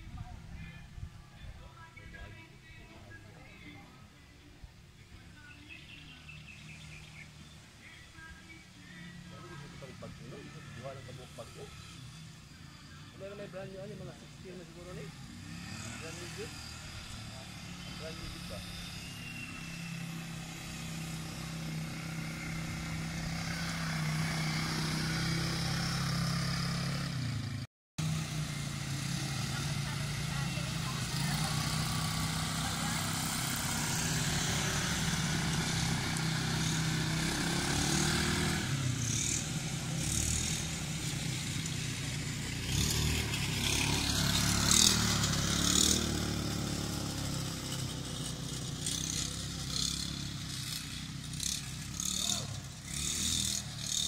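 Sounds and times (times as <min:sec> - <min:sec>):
quad bike engines droning: 0:00.0 - 0:54.0.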